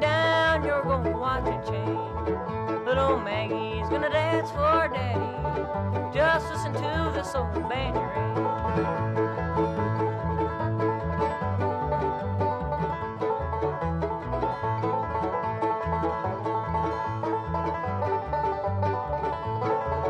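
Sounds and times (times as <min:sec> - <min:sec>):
acoustic guitar: 0:00.0 - 0:20.0
banjo rapid picking: 0:00.0 - 0:20.0
mandolin: 0:00.0 - 0:20.0
upright bass: 0:00.0 - 0:20.0.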